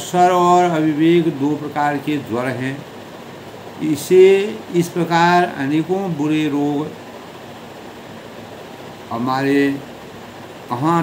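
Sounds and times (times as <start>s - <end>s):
ceiling fan hiss: 0.0s - 11.0s.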